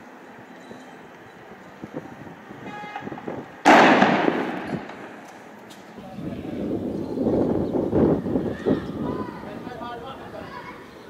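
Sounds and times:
loud bang: 3.6 - 5.4.

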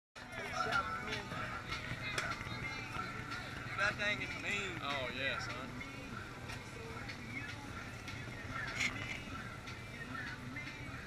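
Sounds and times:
people talking: 0.2 - 5.8
background music: 0.2 - 11.0.

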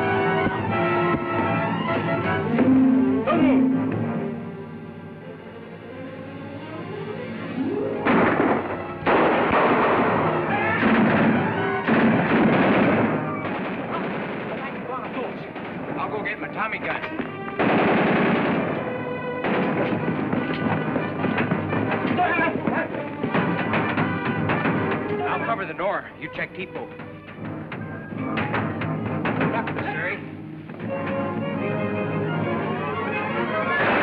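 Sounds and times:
dramatic orchestral music: 0.0 - 34.0.

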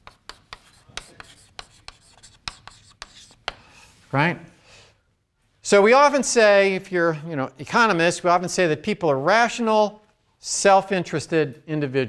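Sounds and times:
chalk scratching on blackboard: 0.0 - 3.6
chalk tapping on board: 0.0 - 3.7.

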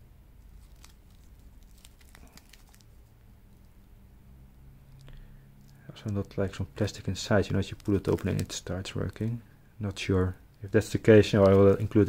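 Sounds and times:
plastic film crinkling: 0.4 - 3.9, 4.9 - 12.0.

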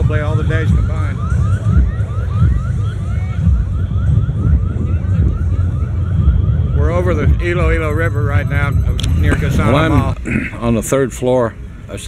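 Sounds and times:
heavy low rumble: 0.0 - 12.0.

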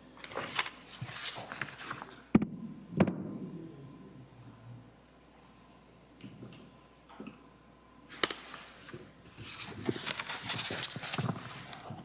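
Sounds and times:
papers rustling: 0.2 - 2.3, 8.1 - 12.0.

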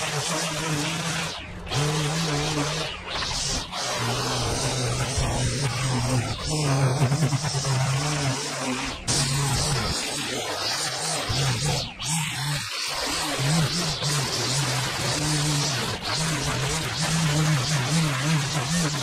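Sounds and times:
string trimmer running: 0.0 - 19.0
trimmer line whipping grass: 0.0 - 19.0.

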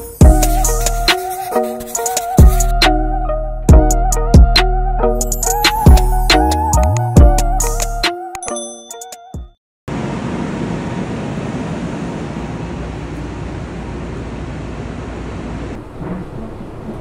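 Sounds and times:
train rumbling: 9.9 - 17.0.

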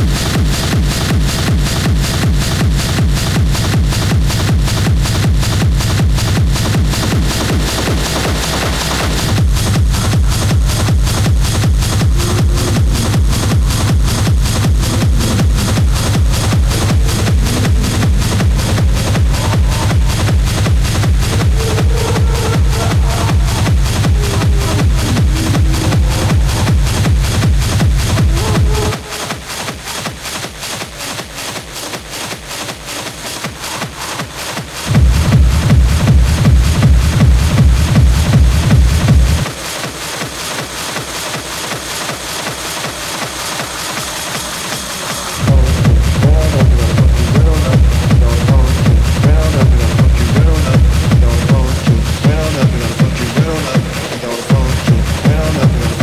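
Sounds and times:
driving percussion loops: 0.0 - 56.0
pounding kick drum: 0.0 - 56.0.

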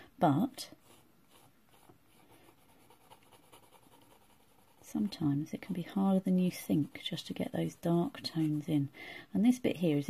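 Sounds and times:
pencil scratching on paper: 0.7 - 5.8.

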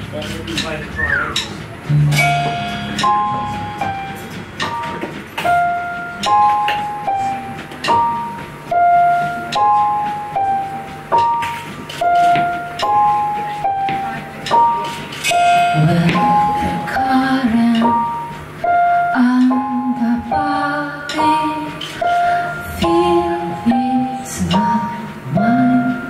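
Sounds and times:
low keyboard notes: 0.0 - 26.0
electric keyboard high notes: 0.9 - 26.0.

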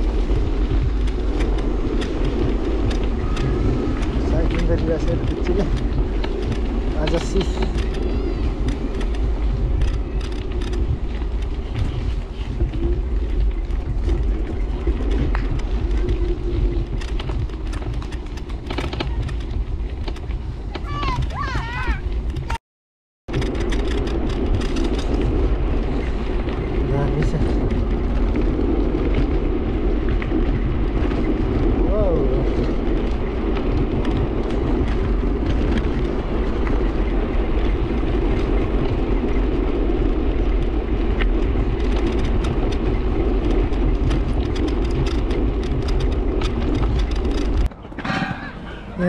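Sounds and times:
road rumble: 0.0 - 22.6, 23.3 - 49.0
wind buffeting microphone: 0.0 - 22.6, 23.3 - 49.0
children's voices: 20.7 - 22.0.

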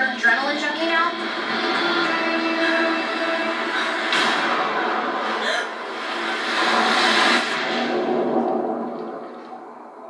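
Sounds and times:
steady low tones: 0.0 - 10.0.

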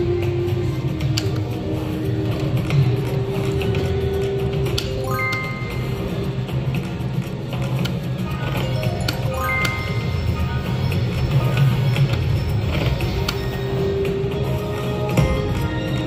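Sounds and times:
steady low background hum: 0.0 - 16.0
slot machine game music: 4.1 - 6.6, 8.2 - 16.0
electronic chime notes: 5.0 - 6.1, 8.8 - 11.0.

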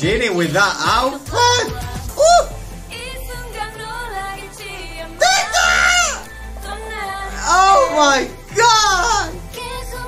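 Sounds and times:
man screaming excitedly: 5.2 - 6.2.

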